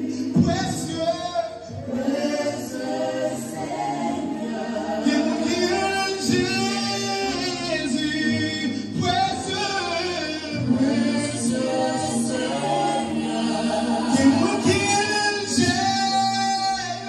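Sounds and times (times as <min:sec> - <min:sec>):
choir singing long notes: 0:00.0 - 0:00.6, 0:01.4 - 0:17.0.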